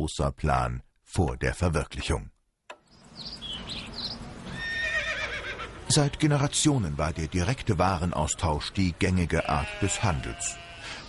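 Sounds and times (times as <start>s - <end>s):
horse whinnying: 4.5s - 5.7s.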